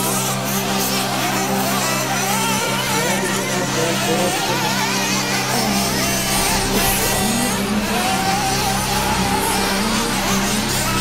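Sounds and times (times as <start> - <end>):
background music: 0.0 - 11.0
small nitro engines whining: 0.0 - 11.0.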